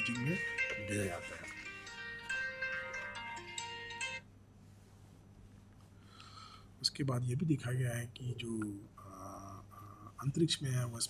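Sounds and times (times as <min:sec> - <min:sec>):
tune of clear steady notes: 0:00.0 - 0:04.3
faint low hum: 0:04.2 - 0:11.0.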